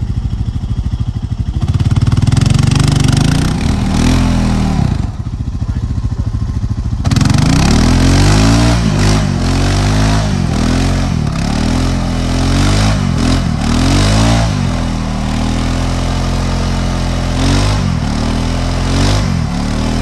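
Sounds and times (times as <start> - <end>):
quad bike engine revving: 0.0 - 20.0.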